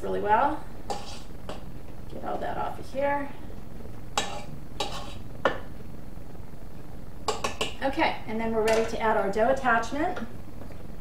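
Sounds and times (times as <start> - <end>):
spatula scraping metal bowl: 0.9 - 1.6, 4.2 - 5.3.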